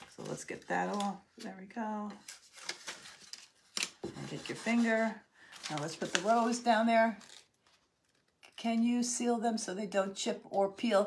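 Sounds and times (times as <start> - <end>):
tool scraping over paper: 4.2 - 5.2.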